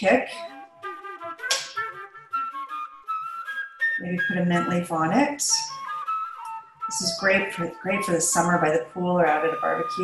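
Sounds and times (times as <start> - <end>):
flute melody: 0.4 - 4.8, 5.6 - 10.0.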